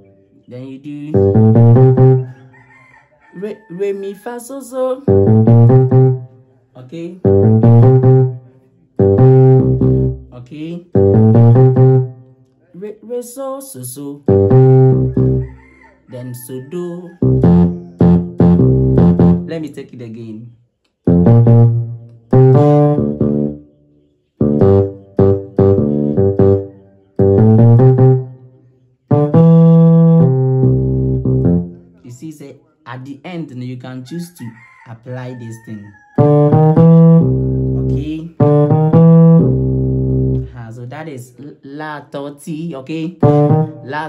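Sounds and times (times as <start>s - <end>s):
electric piano bass notes: 1.1s - 2.2s, 5.1s - 6.4s, 7.2s - 12.2s, 14.2s - 15.4s, 17.2s - 19.7s, 21.0s - 23.6s, 24.4s - 28.4s, 29.1s - 31.8s, 36.2s - 40.6s, 43.2s - 44.0s.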